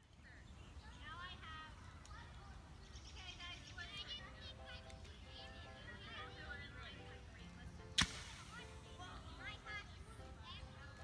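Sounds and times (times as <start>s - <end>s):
water bottle rocket pop: 8.0s - 8.6s.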